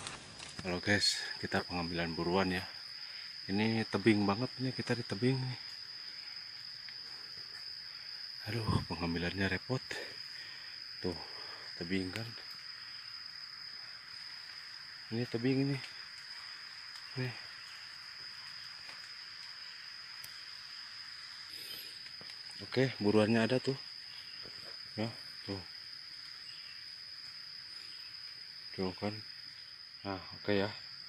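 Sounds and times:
soft hiss: 0:00.0 - 0:30.6
crickets chirring: 0:00.0 - 0:31.0
insects singing high-pitched tone: 0:00.0 - 0:31.0.

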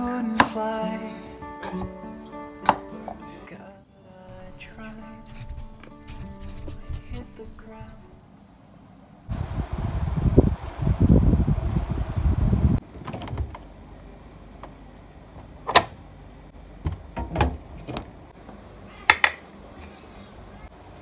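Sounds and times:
wind rumbling on microphone: 0:09.3 - 0:12.8
refrigerator door clicks and knocks: 0:16.8 - 0:18.1.

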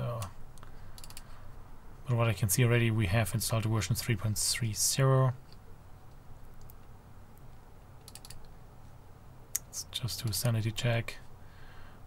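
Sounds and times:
low steady hum: 0:00.0 - 0:12.0
computer mouse clicking: 0:00.2 - 0:01.3, 0:05.5 - 0:08.6.

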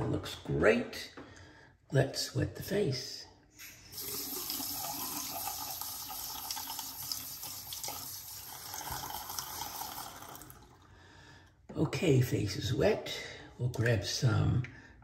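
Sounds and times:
sink tap running: 0:03.6 - 0:10.6.

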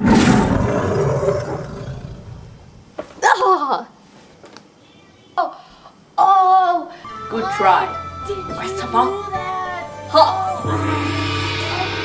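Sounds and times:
loud roar: 0:00.0 - 0:02.7.

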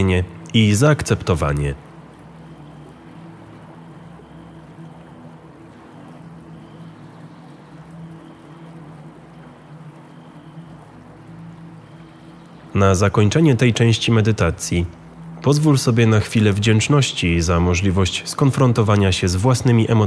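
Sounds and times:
low drone of held tones: 0:00.0 - 0:20.0
running water hiss: 0:00.0 - 0:20.0.

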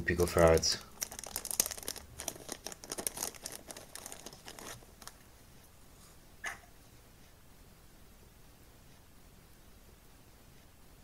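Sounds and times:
plastic bag crinkling: 0:00.1 - 0:05.3.

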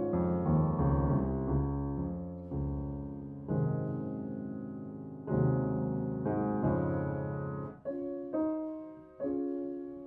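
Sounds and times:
slow classical piano: 0:00.0 - 0:10.0.

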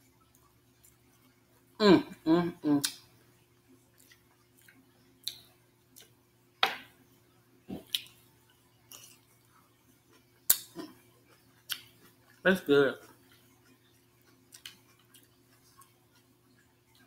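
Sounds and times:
chewing lip smacks: 0:03.9 - 0:06.2, 0:07.8 - 0:08.2, 0:08.9 - 0:09.4, 0:10.1 - 0:12.4, 0:13.0 - 0:17.0.

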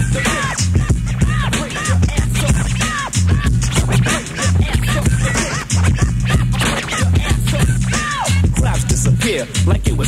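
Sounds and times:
hip hop drum beat and bass: 0:00.0 - 0:10.0
record scratching on turntable: 0:00.0 - 0:10.0.

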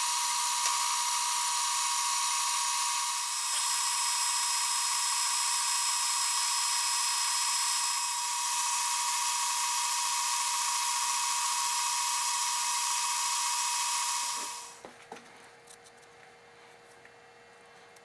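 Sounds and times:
metal lathe whining: 0:00.0 - 0:14.8
hiss of cutting: 0:13.4 - 0:14.8.

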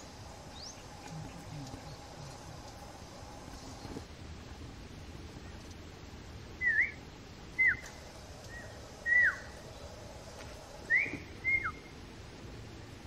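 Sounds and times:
bird whistled calls: 0:06.6 - 0:07.0, 0:07.6 - 0:09.6, 0:10.9 - 0:11.9.

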